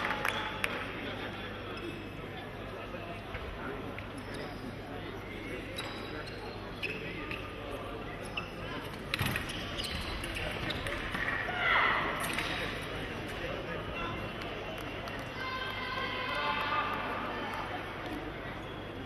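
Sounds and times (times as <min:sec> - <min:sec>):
murmur of voices: 0:00.0 - 0:19.0.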